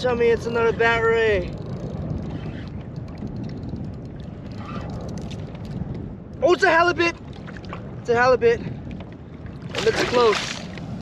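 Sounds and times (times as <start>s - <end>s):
water lapping against hull: 0.0s - 11.0s
wind buffeting microphone: 0.0s - 11.0s.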